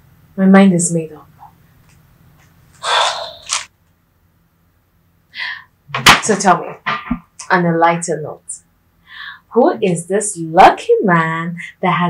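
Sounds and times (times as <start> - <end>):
woman exhaling: 2.8 - 3.5.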